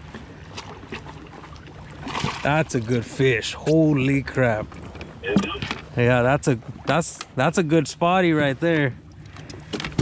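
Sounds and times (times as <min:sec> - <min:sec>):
faint splashes: 0:00.0 - 0:10.0
water lapping and splashing: 0:00.0 - 0:10.0.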